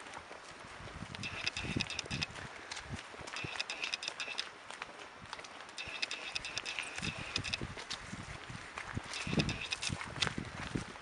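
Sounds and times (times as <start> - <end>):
footsteps on leaves: 0.0 - 11.0
sharp clicks and crackles: 1.1 - 2.3, 3.3 - 4.5, 5.3 - 7.6, 9.1 - 10.4.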